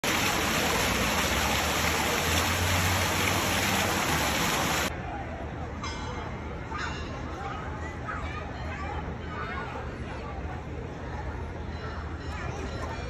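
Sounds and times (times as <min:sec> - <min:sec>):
fountain jets splashing: 0:00.0 - 0:04.9
murmur of crowd voices: 0:04.9 - 0:13.0.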